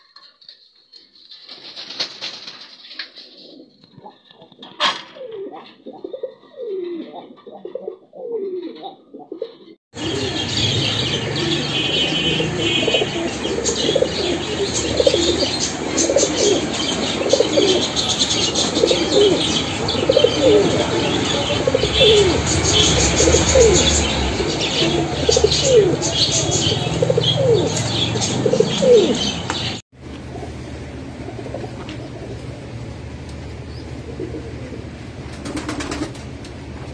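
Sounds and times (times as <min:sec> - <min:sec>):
pigeons cooing: 0:01.2 - 0:36.4.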